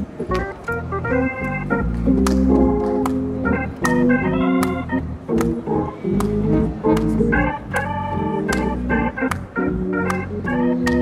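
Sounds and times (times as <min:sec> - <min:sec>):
organ chords: 0:00.0 - 0:11.0
sharp chord clicks: 0:00.3 - 0:11.0.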